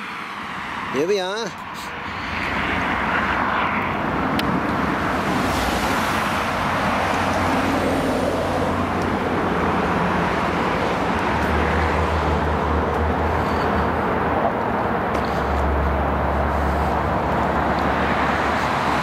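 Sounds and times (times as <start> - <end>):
heavy vehicle engine drone: 0.0 - 19.0
road traffic passing: 0.0 - 19.0.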